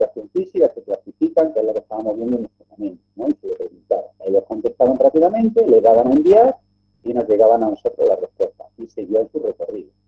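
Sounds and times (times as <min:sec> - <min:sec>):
man speaking: 0:00.0 - 0:09.9
faint low hum: 0:00.0 - 0:10.0.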